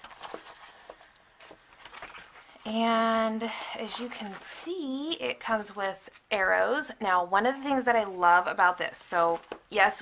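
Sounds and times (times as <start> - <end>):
plastic sleeve rustling: 0.0 - 3.3, 3.9 - 6.4.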